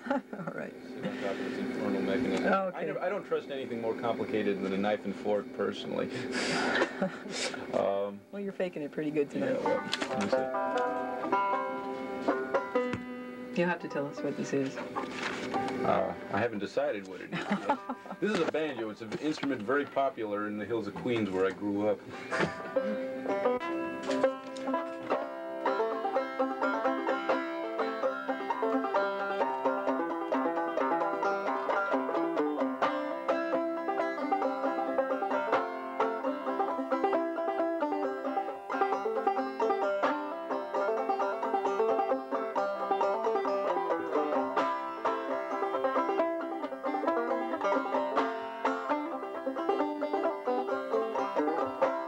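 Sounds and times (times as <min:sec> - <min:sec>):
banjo picking: 0:00.0 - 0:52.0.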